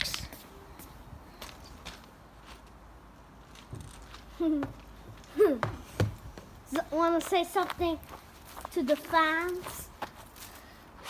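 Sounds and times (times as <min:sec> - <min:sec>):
footsteps on gravel: 0:06.4 - 0:10.7.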